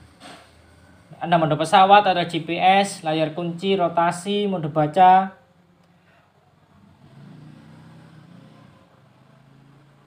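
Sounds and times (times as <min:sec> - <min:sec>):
distant vehicle engine passing: 0:06.3 - 0:10.0.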